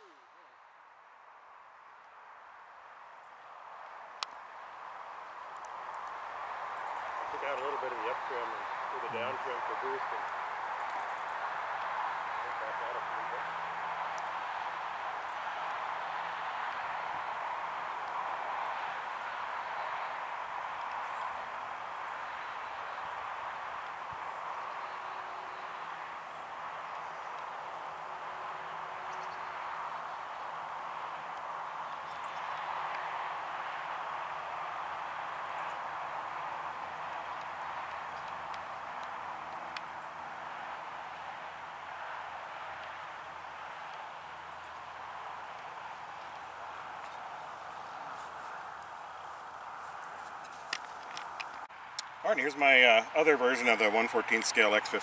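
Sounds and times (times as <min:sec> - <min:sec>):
steady background noise: 0:00.0 - 0:55.0.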